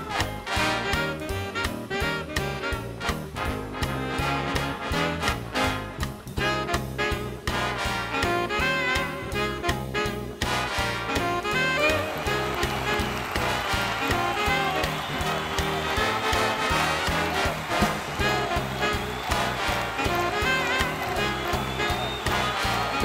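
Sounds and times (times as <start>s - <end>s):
swing-style instrumental music: 0.0s - 23.0s.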